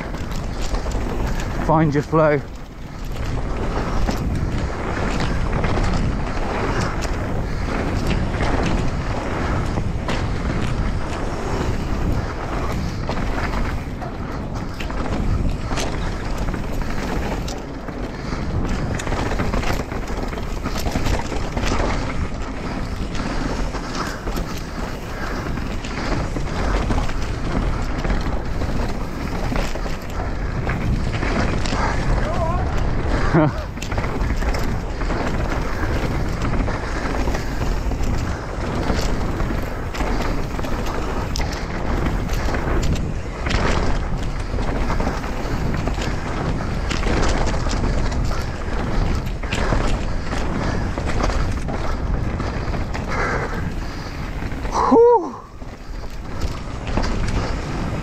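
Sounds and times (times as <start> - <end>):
bike rattling and knocking: 0.0 - 58.0
tyres rolling on dirt: 0.0 - 58.0
wind on microphone: 0.0 - 58.0.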